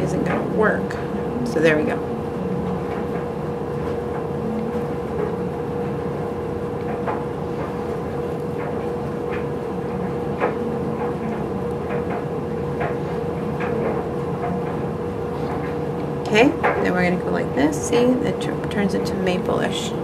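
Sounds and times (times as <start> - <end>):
mechanical hum with steady tone: 0.0 - 20.0.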